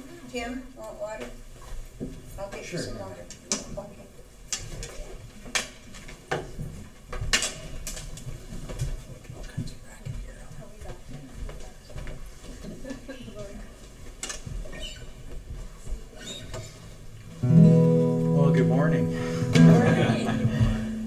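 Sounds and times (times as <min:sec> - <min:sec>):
acoustic guitar strummed: 0:17.4 - 0:21.0.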